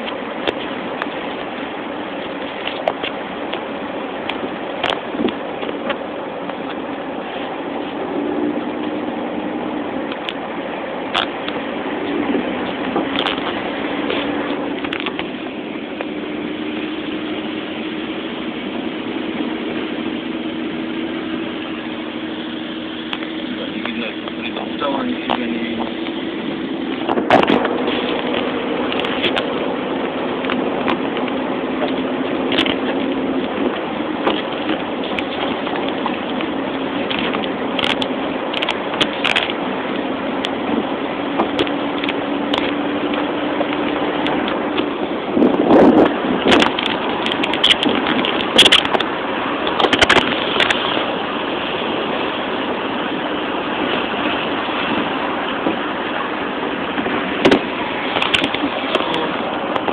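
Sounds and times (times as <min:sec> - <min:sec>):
tyres hissing on wet road: 0:00.0 - 0:45.3, 0:48.4 - 0:59.9
low hum: 0:00.0 - 0:59.9.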